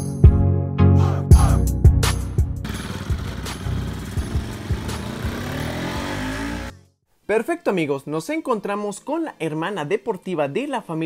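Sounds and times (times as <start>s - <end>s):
background music with steady beat: 0.0s - 6.8s
motorcycle engine revving: 2.6s - 6.8s.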